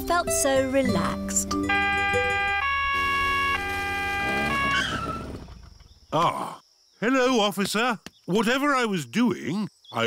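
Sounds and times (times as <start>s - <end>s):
cartoon two-tone police siren: 1.7s - 5.0s.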